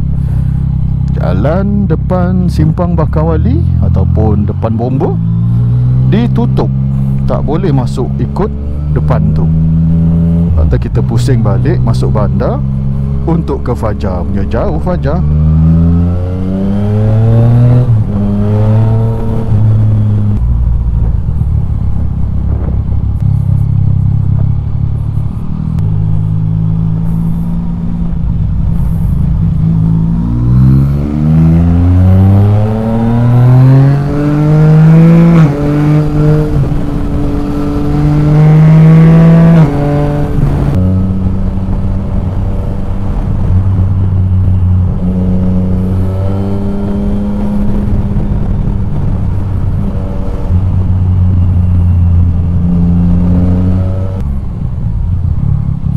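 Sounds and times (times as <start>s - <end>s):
motorcycle engine accelerating: 0.0s - 55.9s.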